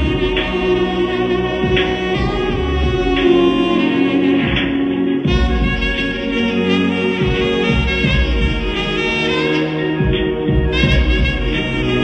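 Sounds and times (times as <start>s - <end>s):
musical accompaniment: 0.0s - 12.0s
saxophones playing melody: 0.0s - 12.0s.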